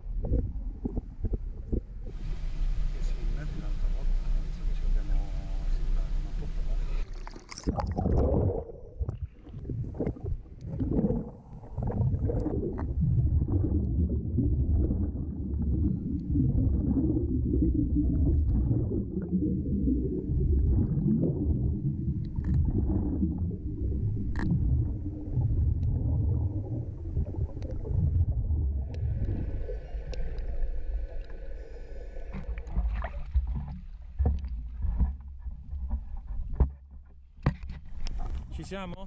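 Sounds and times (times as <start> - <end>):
underwater rumble and bubbles: 0.0 - 38.6
faint steady hum: 0.0 - 39.0.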